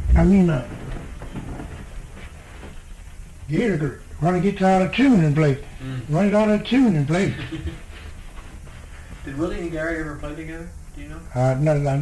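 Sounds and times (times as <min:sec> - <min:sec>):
tape hum and hiss: 0:00.0 - 0:12.0.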